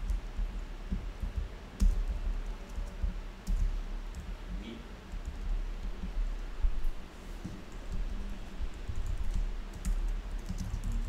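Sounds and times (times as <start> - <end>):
keyboard and mouse clicks: 7.4 - 11.0.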